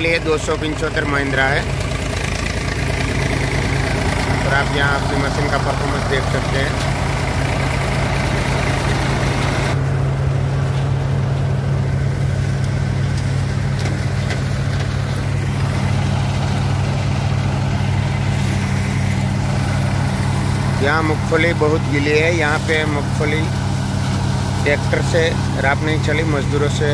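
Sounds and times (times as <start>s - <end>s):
tractor diesel engine running: 0.0s - 26.9s
thresher threshing noise: 0.8s - 26.9s.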